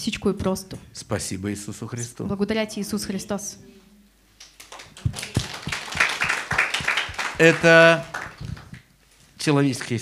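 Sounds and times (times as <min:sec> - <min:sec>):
light applause: 0:04.5 - 0:08.9.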